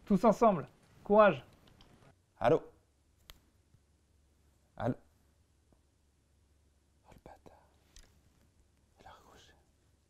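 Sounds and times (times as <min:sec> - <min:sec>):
faint soft clicks: 0:00.6 - 0:02.1, 0:03.2 - 0:03.8, 0:07.7 - 0:08.9.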